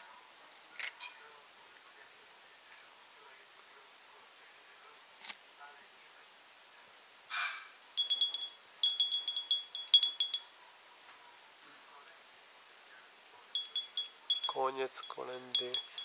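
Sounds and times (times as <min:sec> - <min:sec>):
high-pitched chime tinkling: 0:08.0 - 0:10.5, 0:13.6 - 0:16.0.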